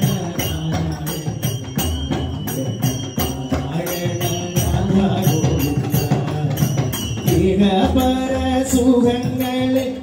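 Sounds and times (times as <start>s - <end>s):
jingling metal percussion: 0.0s - 10.0s
tabla: 0.0s - 10.0s.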